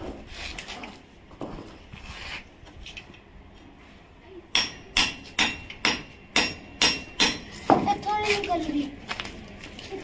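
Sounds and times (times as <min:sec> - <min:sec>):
hammer striking steel chisel: 0:04.6 - 0:07.8.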